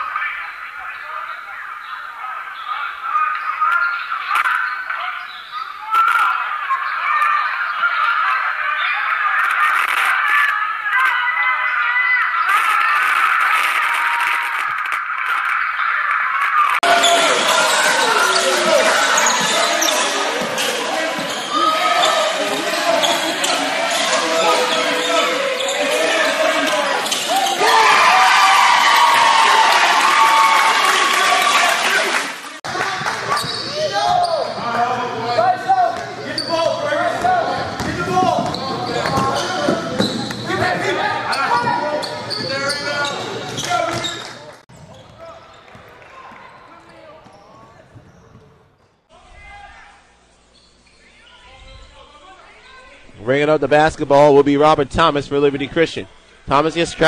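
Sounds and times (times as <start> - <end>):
crowd voices and shouts: 0.0 - 48.5
basketball bouncing: 37.1 - 40.8.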